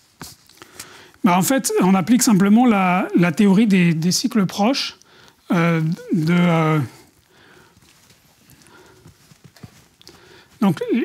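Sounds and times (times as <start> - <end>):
footsteps on hard floor: 7.4 - 10.6.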